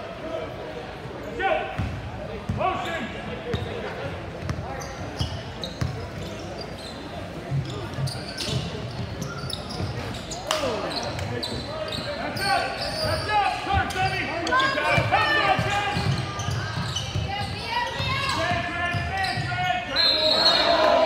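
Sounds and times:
crowd chatter: 0.0s - 21.0s
sneakers squeaking: 1.1s - 21.0s.

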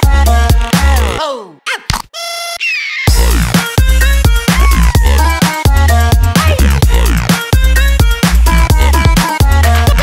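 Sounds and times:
breakbeat drums and bass: 0.0s - 1.2s, 3.1s - 10.0s
chopped synth stabs: 3.1s - 10.0s.

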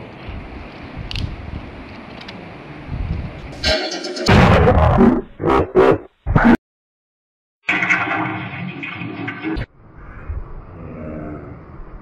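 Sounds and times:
distorted buzzing soundtrack: 3.6s - 6.5s.

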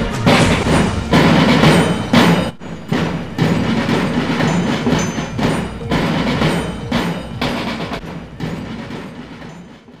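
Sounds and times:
marching drums beating: 0.0s - 10.0s.

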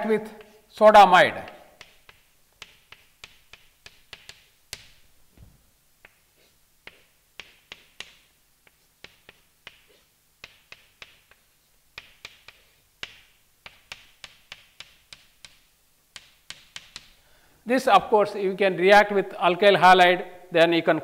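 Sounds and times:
chalk tapping and scratching on blackboard: 0.2s - 0.7s, 1.4s - 17.2s.

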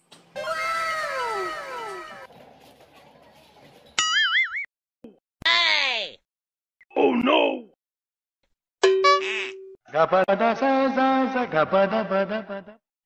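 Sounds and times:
cry falling in pitch: 0.4s - 2.3s.

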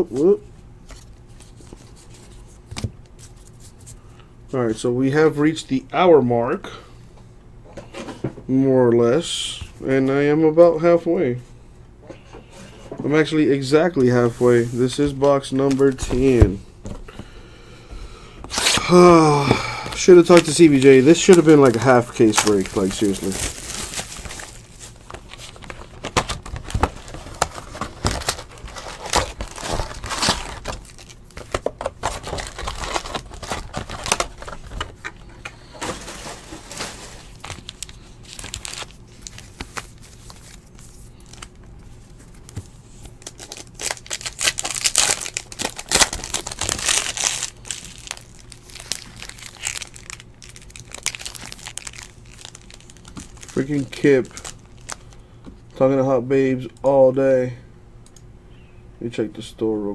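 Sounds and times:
plastic and foil wrappers crinkling: 18.5s - 55.2s.

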